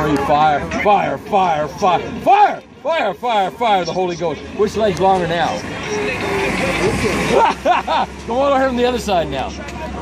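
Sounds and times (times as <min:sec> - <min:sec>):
people's voices: 0:00.0 - 0:10.0
vehicle passing close by: 0:05.4 - 0:10.0.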